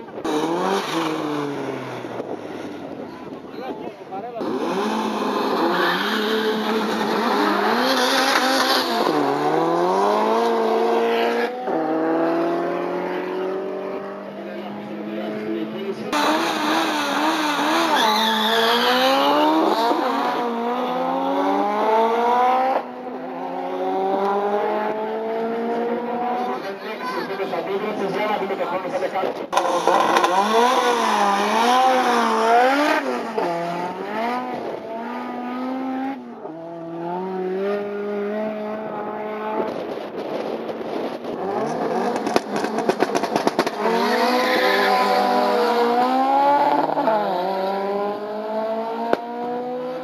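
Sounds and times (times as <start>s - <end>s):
drag racing car accelerating: 0.1s - 50.0s.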